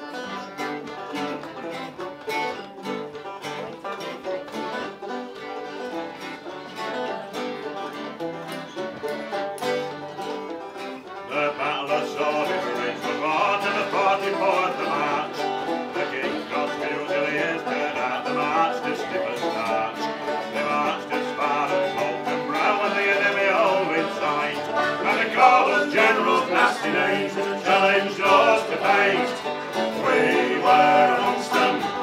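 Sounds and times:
banjo: 0.0s - 32.0s
folk band playing: 0.0s - 32.0s
plucked string instrument: 0.0s - 32.0s.

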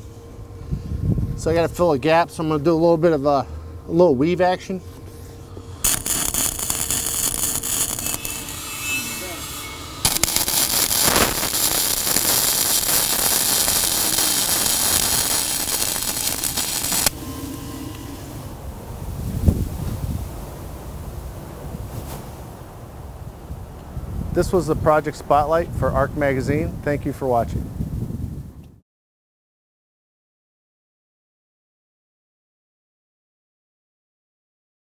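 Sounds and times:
welding arc crackling: 5.7s - 17.2s.

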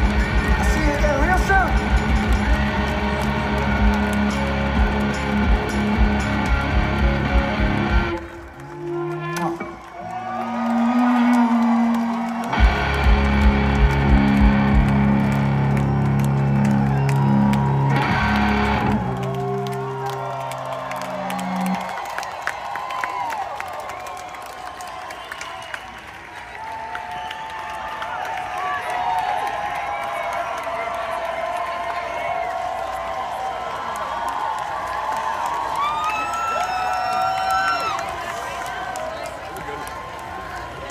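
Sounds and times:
live rock band playing: 0.0s - 8.3s, 12.5s - 16.5s, 17.1s - 19.2s
amplified guitar chords: 0.0s - 9.8s, 10.8s - 20.0s
crowd cheering: 0.0s - 40.9s.

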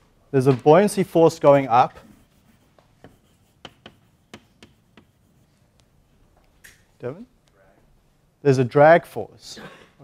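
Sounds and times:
chalk tapping on blackboard: 1.9s - 5.9s.

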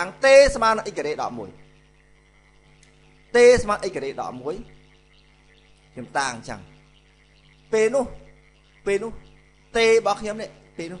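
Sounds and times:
man lecturing: 0.0s - 1.6s, 3.3s - 4.7s, 6.0s - 6.8s, 7.7s - 11.0s
faint electrical hum: 0.0s - 11.0s.

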